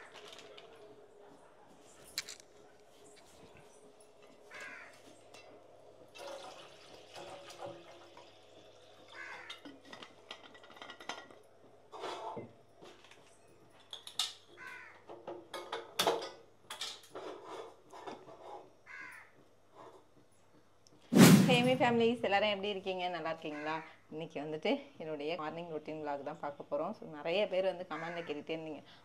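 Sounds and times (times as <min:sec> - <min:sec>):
cooking pots knocking and clinking: 0:09.3 - 0:13.0, 0:15.1 - 0:17.0.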